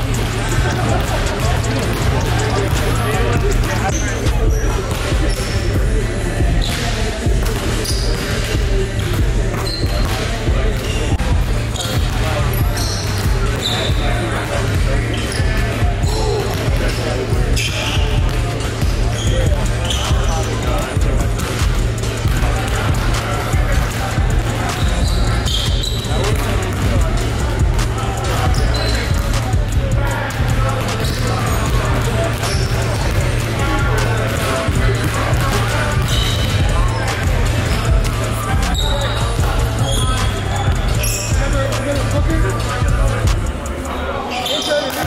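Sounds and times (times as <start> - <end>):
background music with bass line: 0.0 - 43.9
basketballs bouncing on wooden floor: 0.2 - 41.6.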